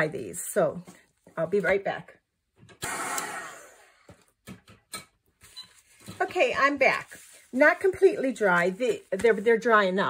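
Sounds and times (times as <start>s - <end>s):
heat gun blowing: 2.8s - 4.0s.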